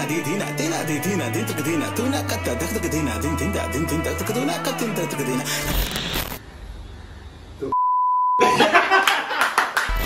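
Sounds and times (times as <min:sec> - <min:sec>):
censor bleep: 0:07.7 - 0:08.4
loud laughter: 0:08.4 - 0:09.8
people clapping: 0:08.9 - 0:10.0.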